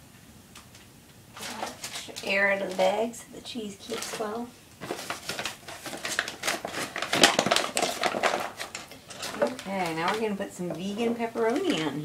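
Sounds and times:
plastic bag crinkling: 1.3 - 12.0.

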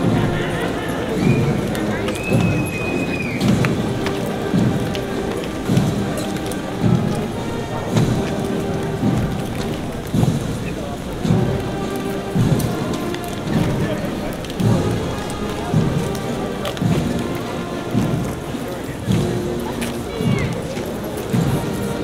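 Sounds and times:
band playing slow march: 0.0 - 22.0
noisy background: 0.0 - 22.0
bass drum beating: 3.4 - 14.0.

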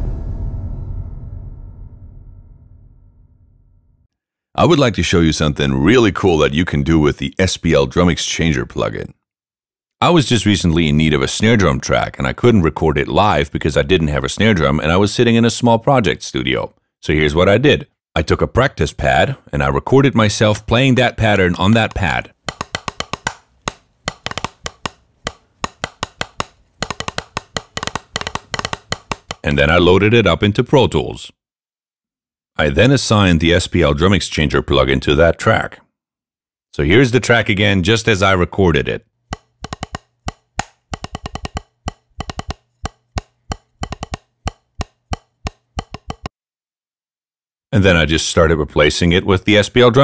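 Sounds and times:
drumsticks tapping practice pad: 21.7 - 29.5, 39.3 - 46.3.

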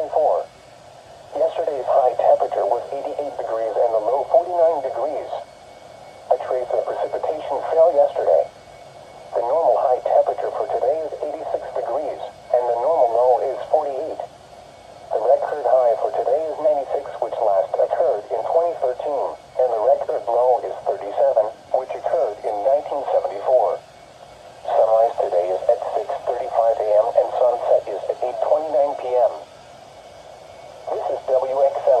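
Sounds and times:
automated voice from small speaker: 0.0 - 0.5, 1.4 - 5.4, 6.3 - 8.5, 9.4 - 14.3, 15.1 - 23.8, 24.7 - 29.4, 30.9 - 32.0.

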